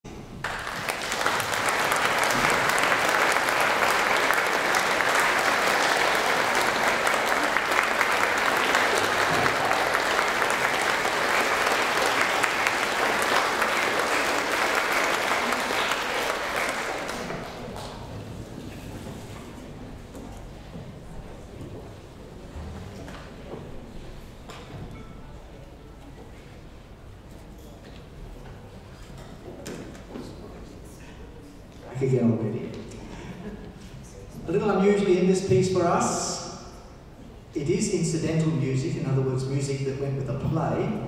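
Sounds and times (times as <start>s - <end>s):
concert audience applauding: 0.4s - 18.3s.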